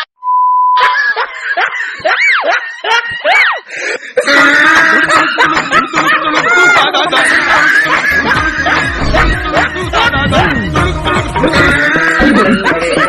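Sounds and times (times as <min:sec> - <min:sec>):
short steady beep: 0:00.2 - 0:00.8
laughter: 0:00.8 - 0:10.6, 0:11.4 - 0:13.0
busy music: 0:07.0 - 0:13.0
swooping pitch sound effects: 0:08.8 - 0:11.7.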